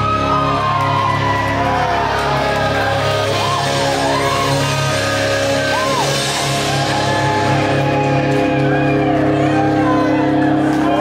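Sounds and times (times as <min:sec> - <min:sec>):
bass guitar: 0:00.0 - 0:11.0
drum kit: 0:00.0 - 0:11.0.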